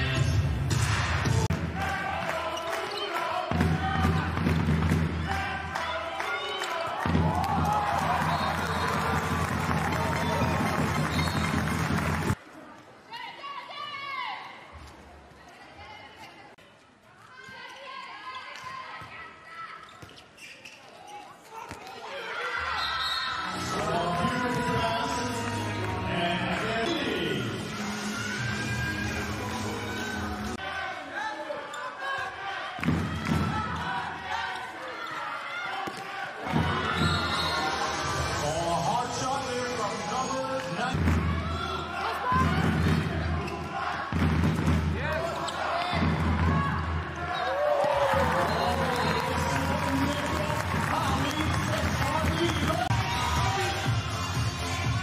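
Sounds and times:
handball bouncing on court: 3.5 - 5.2, 44.1 - 44.9
shoe squeaks on court: 19.7 - 21.8.

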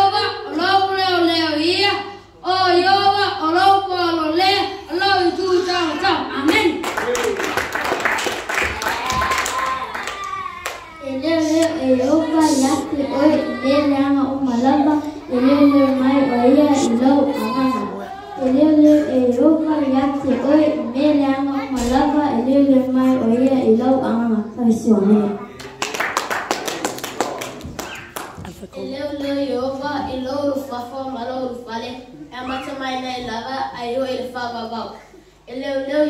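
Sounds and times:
people clapping: 6.4 - 11.0, 25.6 - 28.8.

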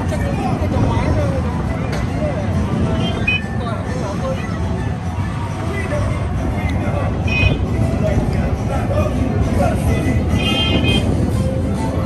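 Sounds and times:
ride car rumbling: 0.0 - 12.0
scattered voices: 0.0 - 12.0
music from loudspeakers: 2.7 - 12.0.

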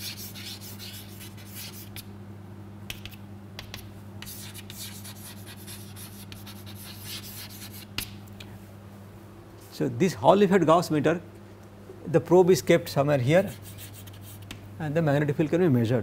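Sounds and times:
chalk scratching on chalkboard: 0.0 - 2.1, 2.9 - 8.1, 13.4 - 14.6
low electrical hum: 0.0 - 16.0.

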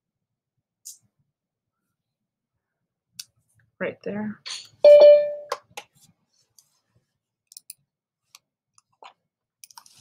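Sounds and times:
notification chime ding: 4.9 - 5.5.

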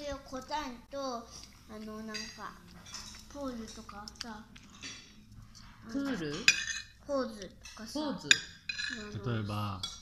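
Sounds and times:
cutlery clinking on ceramic plate: 6.2 - 7.0, 7.6 - 9.2, 9.8 - 10.0.

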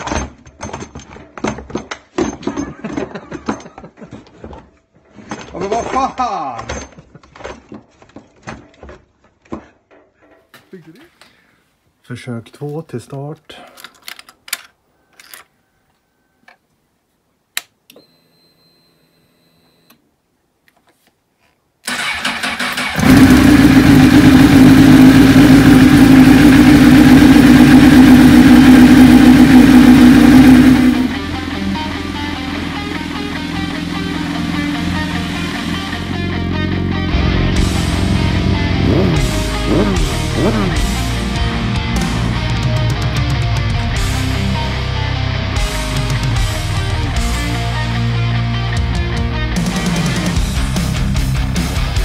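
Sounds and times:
motorcycle starter cranking: 21.8 - 36.6
motorcycle engine running: 22.8 - 44.9.

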